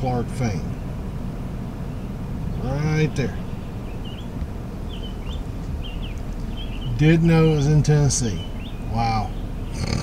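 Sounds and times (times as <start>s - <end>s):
low steady rumble: 0.0s - 10.0s
songbird chirping: 0.0s - 10.0s.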